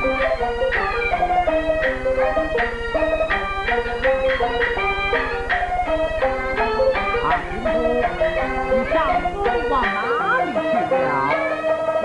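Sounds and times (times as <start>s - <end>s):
low hum: 0.0s - 11.5s
string band playing brisk melody: 0.0s - 12.0s.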